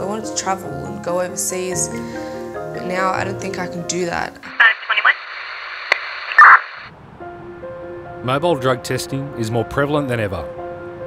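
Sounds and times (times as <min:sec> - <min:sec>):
garbled radio burst: 0:04.5 - 0:06.9
radio click: 0:04.5 - 0:06.9
radio static crackle: 0:04.5 - 0:06.9.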